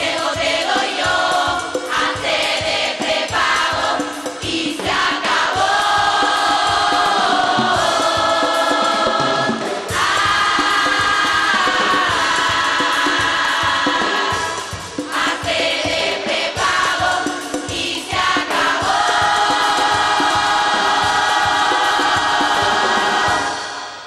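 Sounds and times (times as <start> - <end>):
drum beats: 0.0 - 24.0
women's chorus singing: 0.0 - 24.0.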